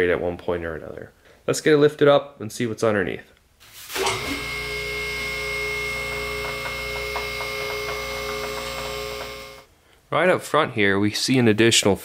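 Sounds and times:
electric pump motor whining hum: 3.9 - 9.7.

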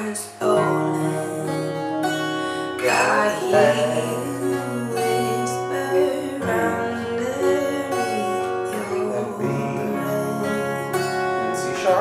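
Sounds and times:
acoustic guitar strumming chords: 0.0 - 12.0
recorded song with singing: 0.0 - 12.0.

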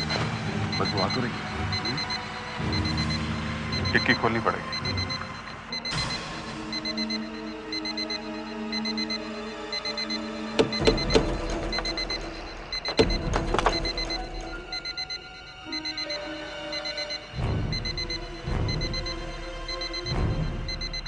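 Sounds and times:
electronic alarm beeping: 0.0 - 21.0
tense background music: 0.0 - 21.0.

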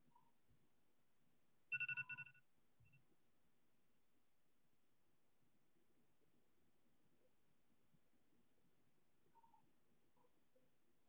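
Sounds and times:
brief beep: 1.7 - 2.4
electronic ringing tone: 1.7 - 2.4.

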